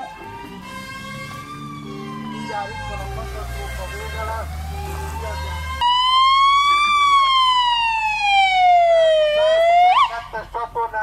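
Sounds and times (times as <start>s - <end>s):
emergency siren wailing: 0.0s - 10.4s.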